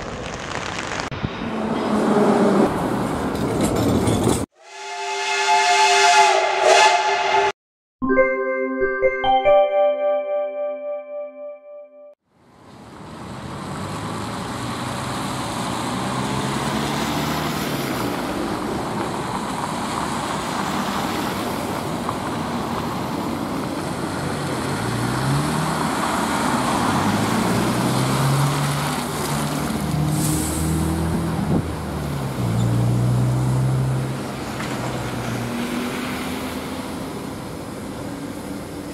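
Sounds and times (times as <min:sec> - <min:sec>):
tyres and passing traffic: 0:00.0 - 0:07.6, 0:12.3 - 0:38.9.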